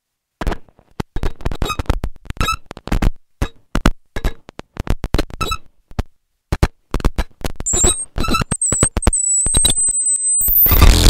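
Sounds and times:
thin high whistling tone: 0:07.7 - 0:10.8.

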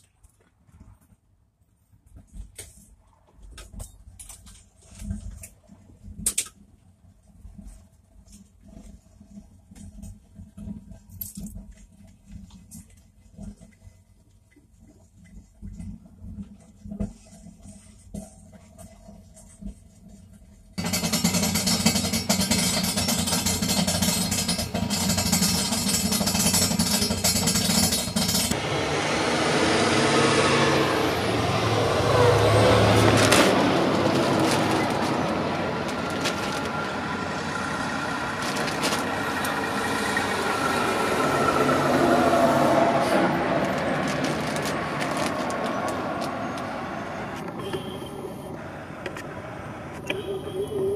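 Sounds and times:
road noise inside vehicle: 0:00.8 - 0:50.9
motorhome engine: 0:20.8 - 0:50.9.

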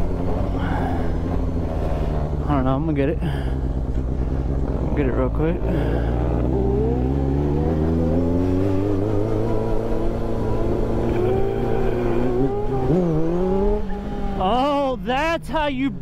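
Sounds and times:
motorcycle engine at speed: 0:00.0 - 0:16.0.

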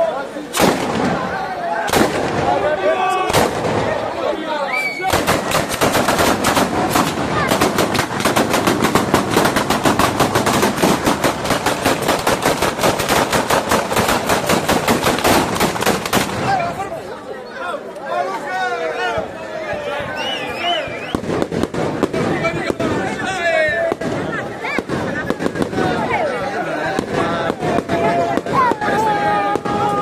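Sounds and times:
single firecracker bangs: 0:00.5 - 0:04.0, 0:05.0 - 0:16.7, 0:21.0 - 0:23.2
firecrackers banging in a chain: 0:05.2 - 0:16.4.

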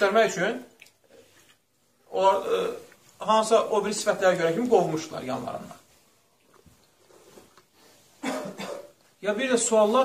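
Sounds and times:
man coughing: 0:08.2 - 0:09.0.

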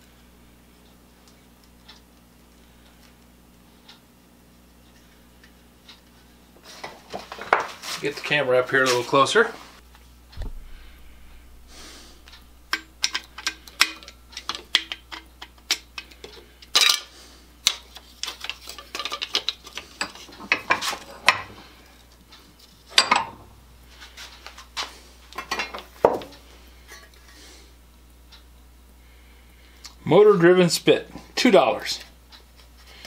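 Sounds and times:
loud knocks: 0:10.4 - 0:13.0
metal housing clicking and clattering: 0:10.4 - 0:17.1, 0:22.9 - 0:23.6.

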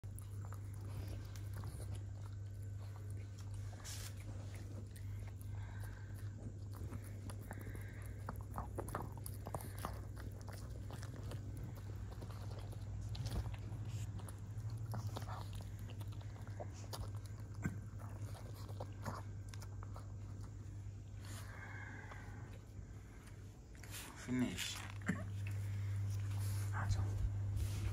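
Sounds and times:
dog crunching crispy food: 0:00.0 - 0:20.6
steady low hum: 0:00.0 - 0:27.9.

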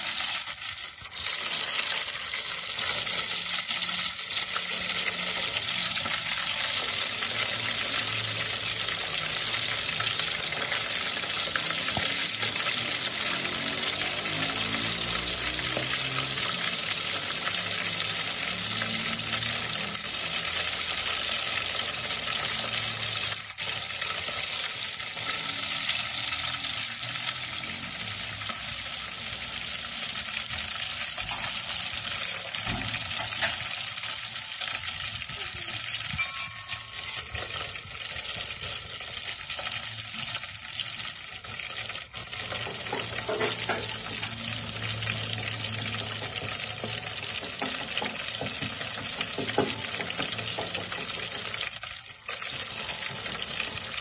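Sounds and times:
oil sizzling and crackling: 0:00.0 - 0:54.0.

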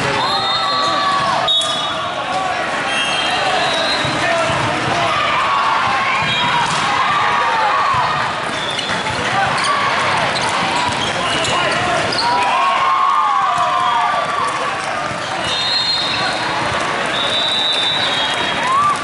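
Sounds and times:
sneakers squeaking on court: 0:08.5 - 0:12.4.

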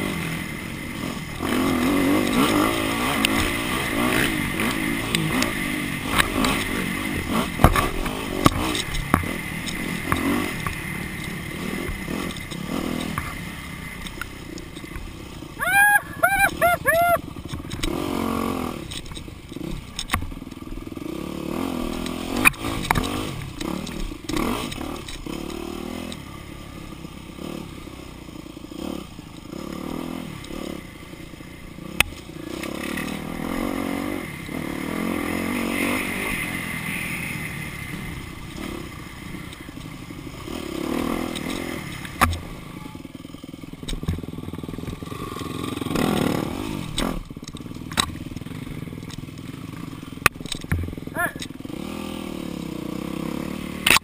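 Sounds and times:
dirt bike engine revving: 0:00.0 - 0:54.0
bike knocking and clattering: 0:43.8 - 0:45.0.

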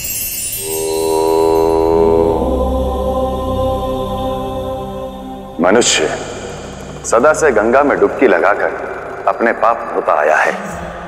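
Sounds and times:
low drone: 0:00.5 - 0:11.0
devotional chanting: 0:00.6 - 0:11.0.

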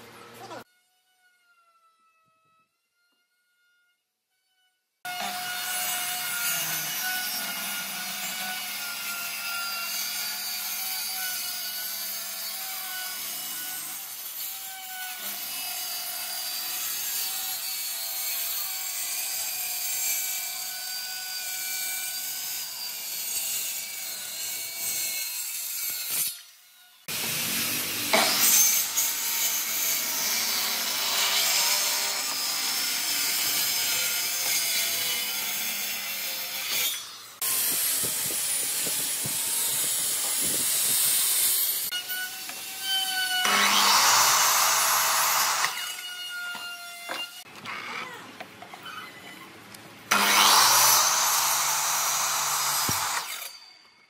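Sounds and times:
circular saw cutting wood: 0:05.0 - 0:48.2, 0:50.1 - 0:54.0.

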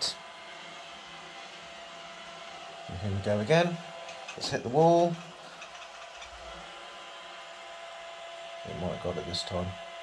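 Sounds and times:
robot vacuum whirring: 0:00.0 - 0:10.0.

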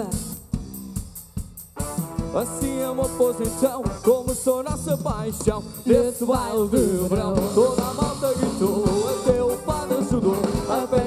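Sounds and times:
bass guitar: 0:00.0 - 0:11.0
drum kit beat: 0:00.0 - 0:11.0
person singing: 0:02.3 - 0:11.0.

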